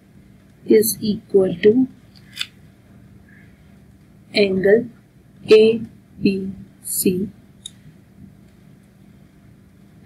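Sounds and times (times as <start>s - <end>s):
low hum with light hiss: 0.0s - 10.0s.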